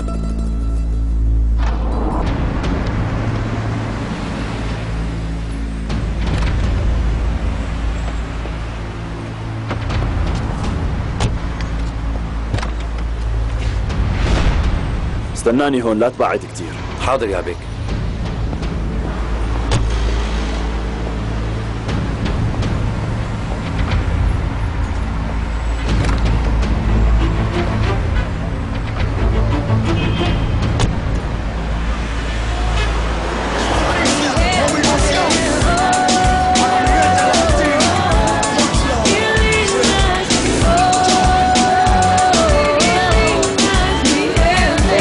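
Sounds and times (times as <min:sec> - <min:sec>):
traffic noise: 0:00.0 - 0:45.0.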